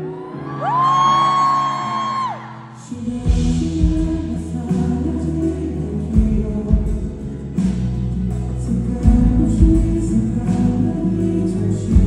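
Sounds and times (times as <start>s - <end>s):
acoustic guitar: 0.0s - 12.0s
person singing: 0.0s - 12.0s
drums and bass: 3.0s - 12.0s.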